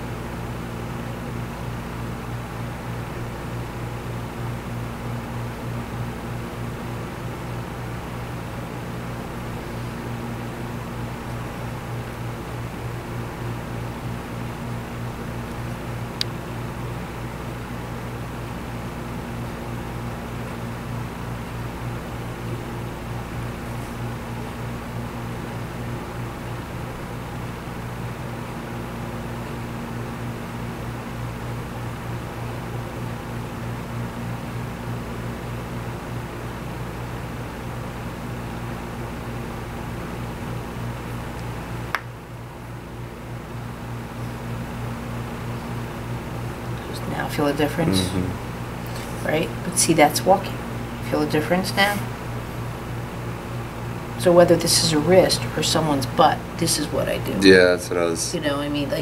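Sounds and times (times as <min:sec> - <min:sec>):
fan hum and hiss: 0:00.0 - 0:59.0.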